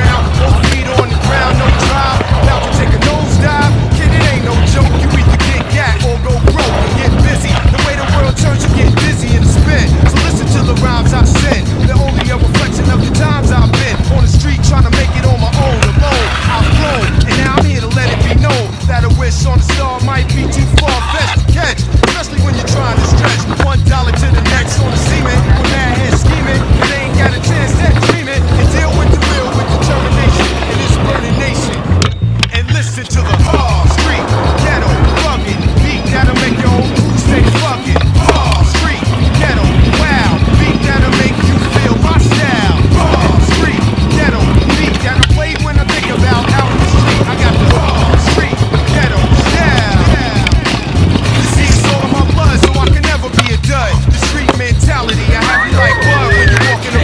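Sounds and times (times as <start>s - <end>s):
sharp clacks of scooter landings: 0.0s - 32.6s, 33.2s - 55.7s
hip-hop beat with bass line: 0.0s - 57.0s
scooter wheels rolling on concrete: 0.0s - 57.0s.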